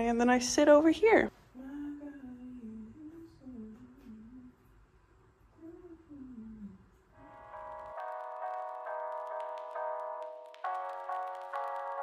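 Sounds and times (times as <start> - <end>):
woman softly humming: 1.6 - 4.7, 5.6 - 7.0.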